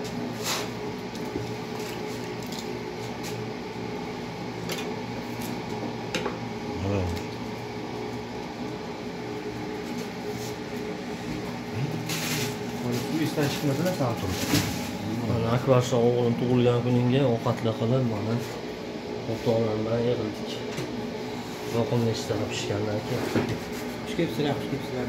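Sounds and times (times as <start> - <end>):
kitchen appliance motor humming: 0.0 - 23.0.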